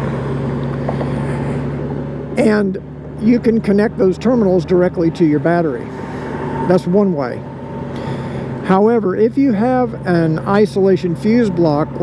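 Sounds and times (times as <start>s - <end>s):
motorcycle engine cruising: 0.0s - 12.0s
road noise: 0.0s - 12.0s.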